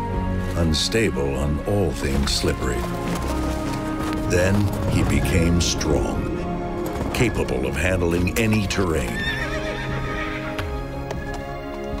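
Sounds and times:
music with sustained notes: 0.0s - 12.0s
horse neighing: 8.9s - 10.8s.

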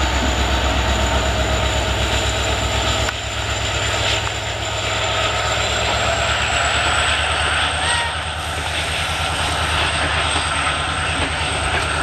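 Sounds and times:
diesel locomotive engine passing: 0.0s - 12.0s.

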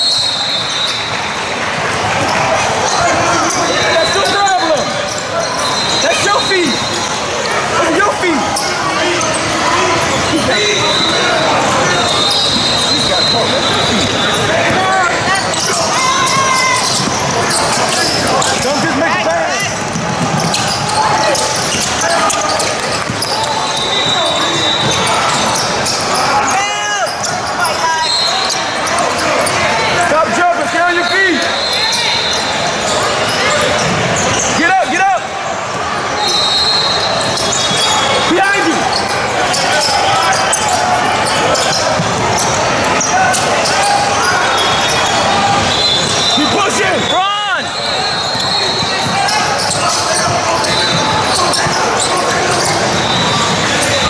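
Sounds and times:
echoing voices: 0.0s - 54.0s
sneakers squeaking: 0.0s - 54.0s
people shouting: 1.9s - 33.8s, 34.6s - 54.0s.

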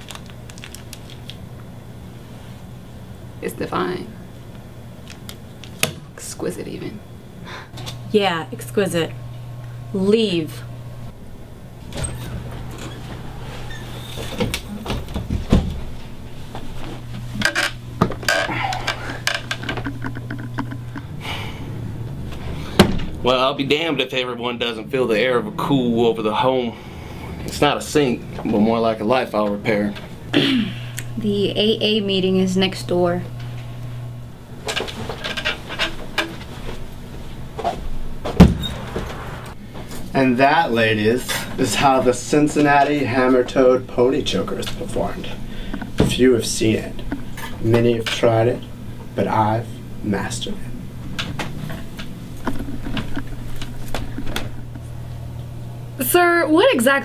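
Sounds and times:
steady low hum: 0.0s - 57.0s
loud thump: 22.8s - 23.1s, 38.3s - 39.3s.

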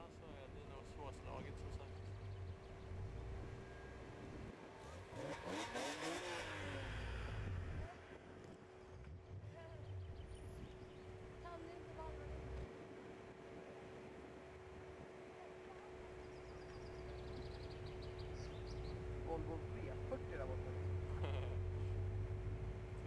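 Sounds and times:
car engine revving: 1.4s - 12.7s.

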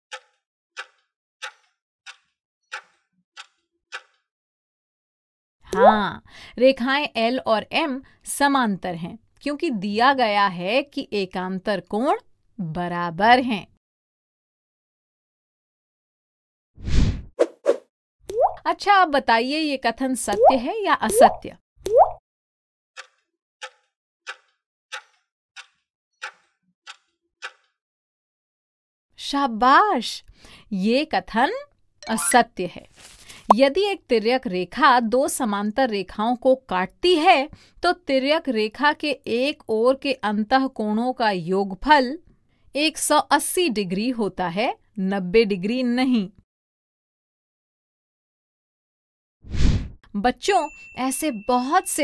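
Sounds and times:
stopwatch ticking: 0.1s - 4.2s, 23.0s - 27.7s.

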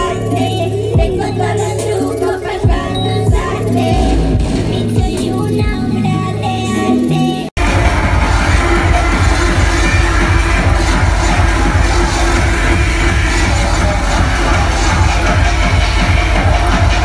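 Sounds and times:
electronic music with pounding bass: 0.0s - 17.0s.

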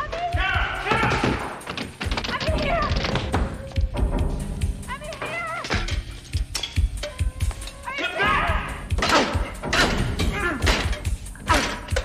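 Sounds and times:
tense horror film music: 0.4s - 12.0s.

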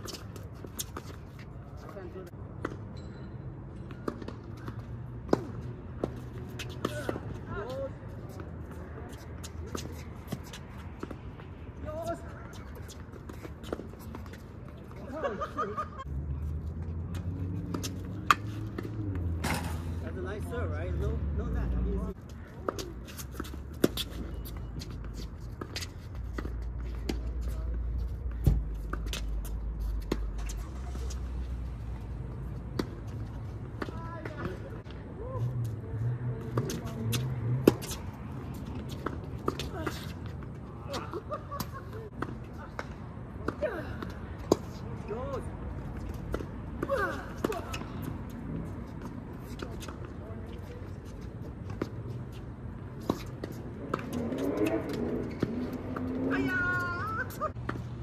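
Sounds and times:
rackets hitting tennis ball: 17.0s - 20.4s, 36.4s - 58.0s.

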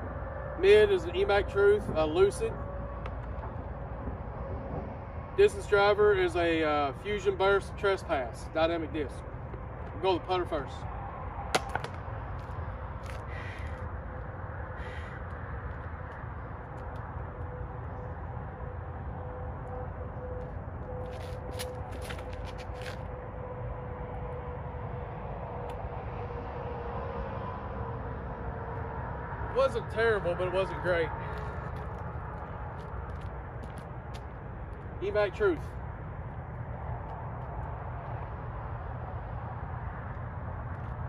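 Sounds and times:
low outdoor rumble: 0.0s - 41.0s.

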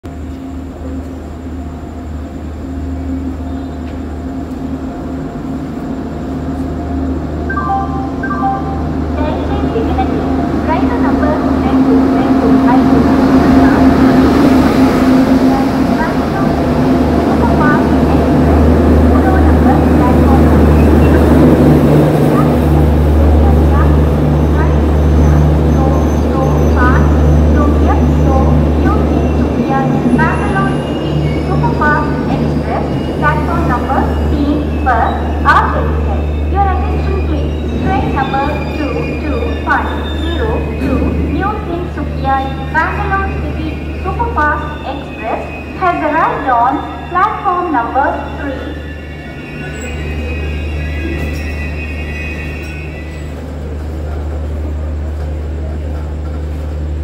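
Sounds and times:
train rumbling past: 0.0s - 57.0s
wheel and brake squeals: 29.1s - 54.0s.

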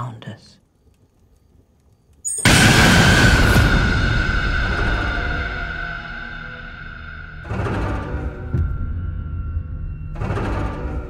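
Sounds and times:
loud boom hit: 2.4s - 10.7s.

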